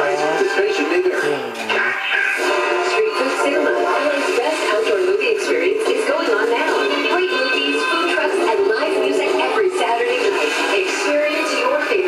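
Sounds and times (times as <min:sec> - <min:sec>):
music on small radio speaker: 0:00.0 - 0:12.0.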